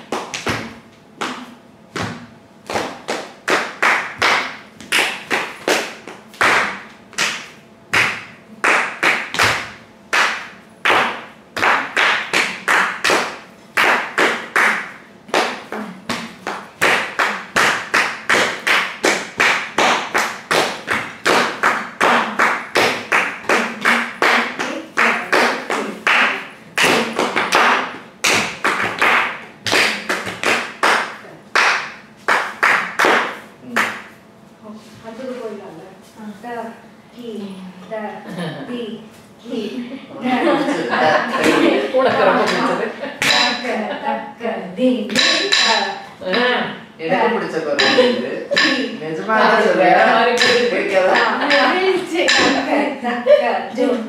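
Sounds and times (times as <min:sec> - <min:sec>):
bare feet stamping on tiles: 0:01.9 - 0:03.2.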